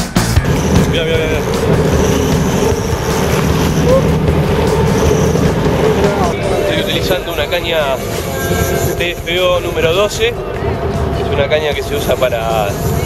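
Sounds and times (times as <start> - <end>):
rock music: 0.0 - 8.9
boat engine running: 0.0 - 13.0
wind: 0.0 - 13.0
voices on board: 0.6 - 13.0.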